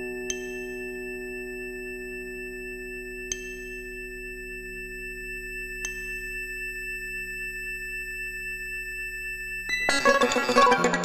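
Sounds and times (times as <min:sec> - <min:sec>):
sustained sine tone chord: 0:00.0 - 0:10.0.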